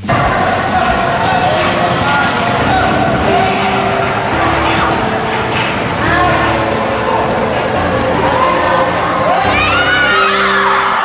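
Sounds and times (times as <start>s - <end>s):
children shouting: 0.0s - 11.0s.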